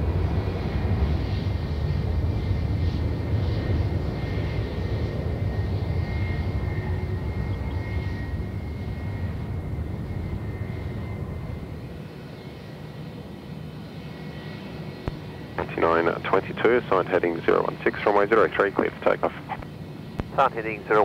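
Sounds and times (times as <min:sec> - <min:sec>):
jet engines rumbling with high whine: 0:00.0 - 0:21.0.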